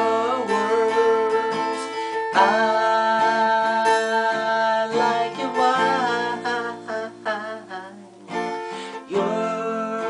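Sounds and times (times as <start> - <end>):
acoustic guitar chord: 0.0 - 10.0
man singing: 0.0 - 10.0.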